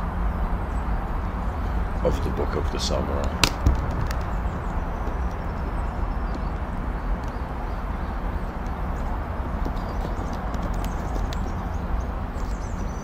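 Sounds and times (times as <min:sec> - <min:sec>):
steady rushing noise: 0:00.0 - 0:13.0
faint clicks and ticks: 0:08.6 - 0:11.8.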